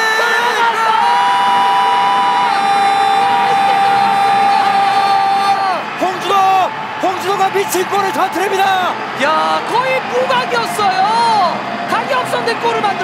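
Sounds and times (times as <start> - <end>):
stadium crowd cheering: 0.0 - 13.0.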